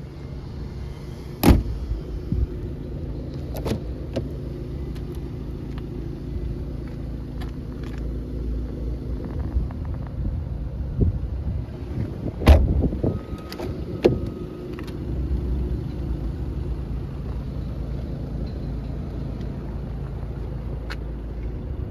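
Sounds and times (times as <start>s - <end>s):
diesel engine idling: 0.0s - 21.9s
car door shutting: 1.4s - 1.8s, 3.4s - 5.2s, 12.0s - 15.0s.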